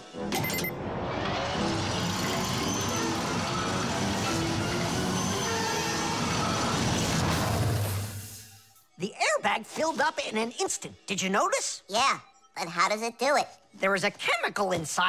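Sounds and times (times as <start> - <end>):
dramatic music: 0.1 - 8.8
cart speeding along rail track: 1.2 - 8.0.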